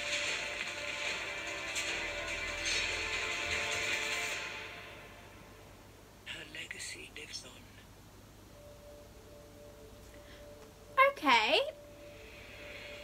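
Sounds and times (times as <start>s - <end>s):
trailer soundtrack music: 0.0s - 5.8s, 11.7s - 13.0s.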